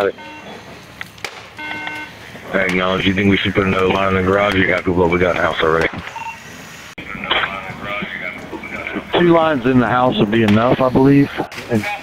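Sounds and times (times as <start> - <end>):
electronic beep: 0.0 - 0.6, 1.6 - 2.1, 6.1 - 6.4
radio hiss: 1.6 - 12.0
faint broken radio voice: 2.2 - 5.9, 7.0 - 12.0.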